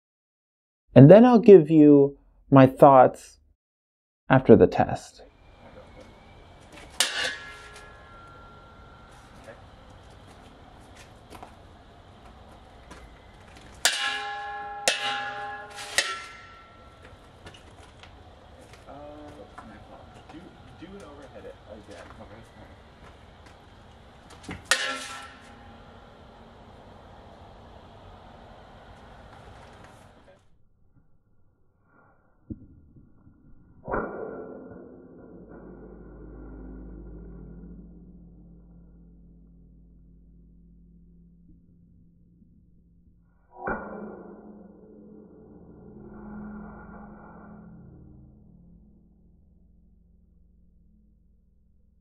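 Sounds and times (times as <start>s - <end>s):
outdoor noise: 4.3s - 52.0s
loud metal clang ringing: 6.8s - 9.9s, 13.8s - 17.4s, 24.6s - 26.6s
wooden sword clanging on metal hat: 13.8s - 16.8s.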